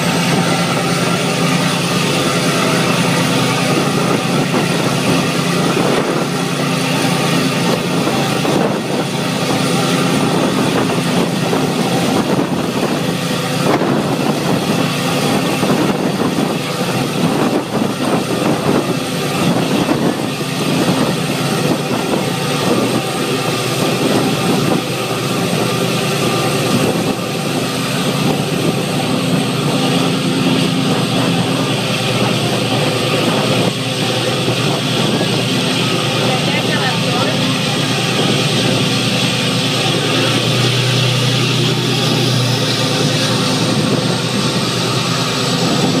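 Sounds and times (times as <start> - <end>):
boat engine humming: 0.0 - 46.0
churning water: 0.0 - 46.0
wind rushing: 0.0 - 46.0.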